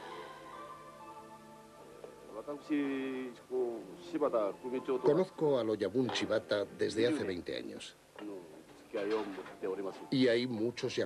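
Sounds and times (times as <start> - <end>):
man speaking: 2.3 - 11.0.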